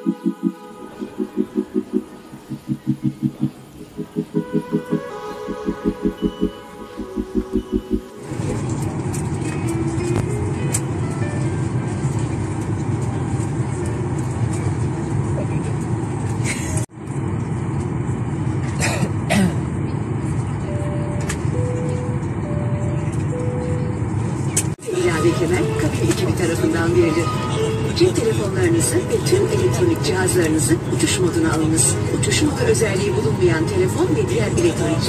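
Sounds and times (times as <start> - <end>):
indistinct voices: 0.0 - 8.5
faint music: 0.0 - 15.9, 20.1 - 35.0
airliner cabin rumble: 0.0 - 35.0.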